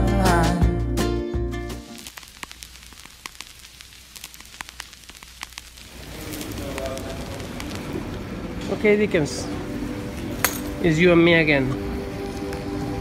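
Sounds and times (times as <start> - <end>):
faint clicks and crackles: 1.8 - 8.8
indoor hall hum: 4.6 - 13.0
distant voices: 5.9 - 13.0.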